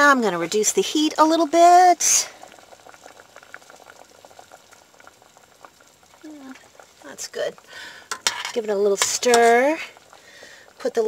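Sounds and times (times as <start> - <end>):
soup bubbling in pot: 0.0 - 11.0.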